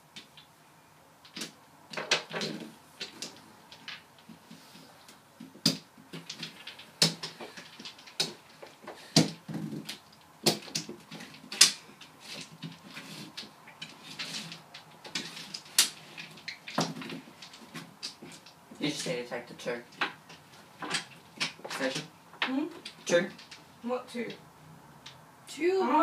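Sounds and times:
mahjong tiles clacking: 0:01.2 - 0:24.4.

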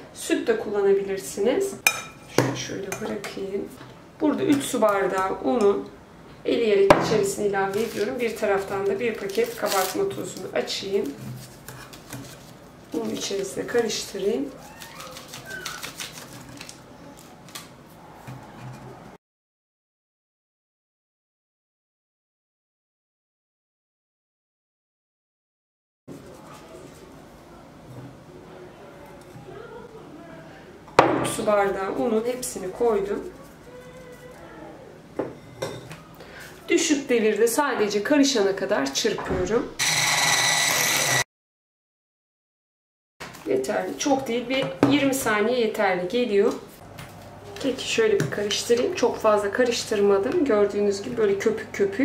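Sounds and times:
electric hand mixer whining: 0:39.8 - 0:41.2.

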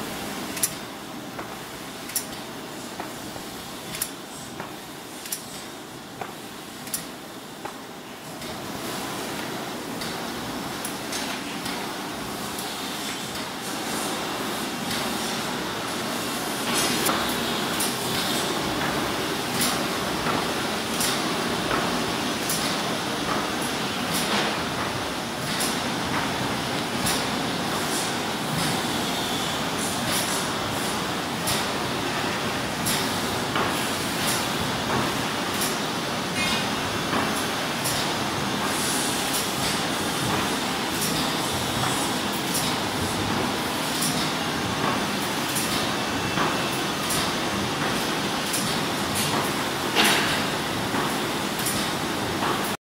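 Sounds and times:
sharp machine clicks: 0:00.6 - 0:00.8.

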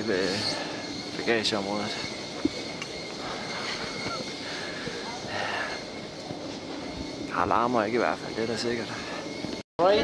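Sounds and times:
distant indistinct chatter: 0:00.0 - 0:09.9
steady background hum: 0:00.0 - 0:10.0.

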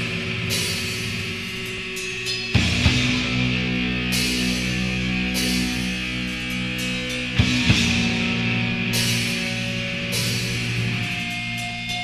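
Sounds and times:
cymbal crashes: 0:00.0 - 0:12.0
drums: 0:00.0 - 0:12.0
distorted electric guitar chord: 0:02.6 - 0:11.6.

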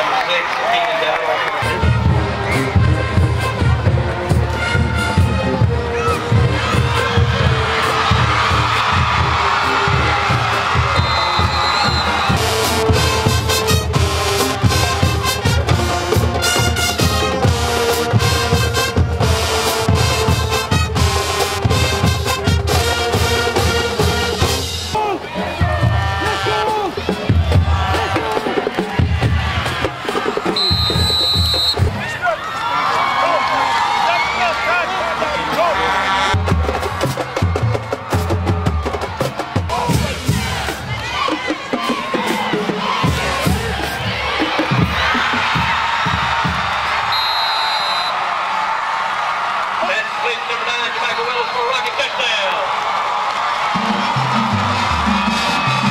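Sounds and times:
crowd cheering: 0:00.0 - 0:55.9
marching band playing: 0:01.3 - 0:32.4, 0:34.7 - 0:48.3, 0:53.2 - 0:55.9.

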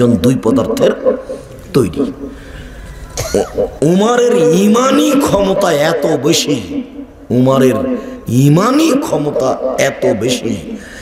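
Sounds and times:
man speaking: 0:00.0 - 0:02.3, 0:03.6 - 0:10.9
man coughing: 0:03.1 - 0:03.8.

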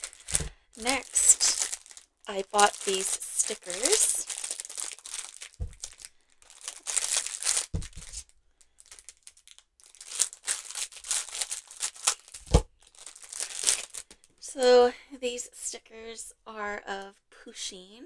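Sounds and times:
plastic wrapping crinkling: 0:00.0 - 0:14.4.

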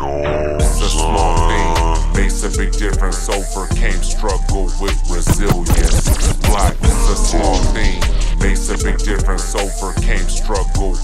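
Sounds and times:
slowed hip hop track with rapping: 0:00.1 - 0:11.0
record scratching on jog wheel: 0:05.3 - 0:07.0.

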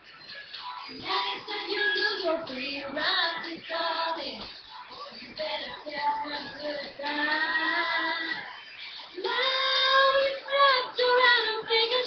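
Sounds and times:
girl singing: 0:00.9 - 0:08.5, 0:09.2 - 0:12.0.

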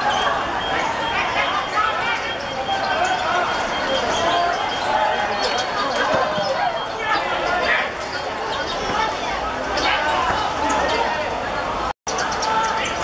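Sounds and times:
people shouting: 0:00.0 - 0:08.0.

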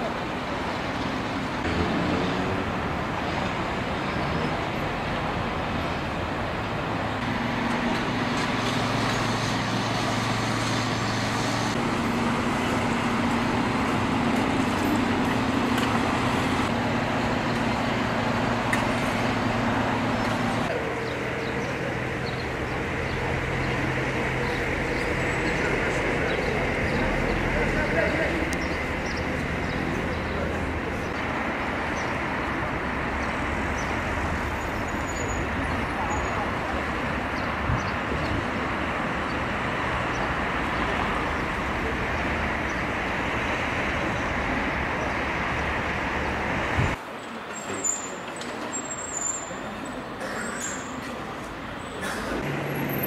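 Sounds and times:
road traffic: 0:00.0 - 0:53.0.

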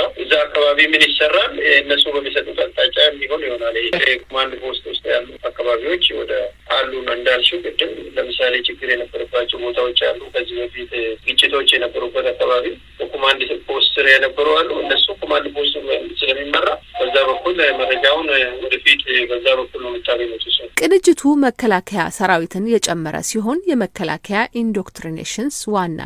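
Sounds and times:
person narrating: 0:00.0 - 0:26.0.

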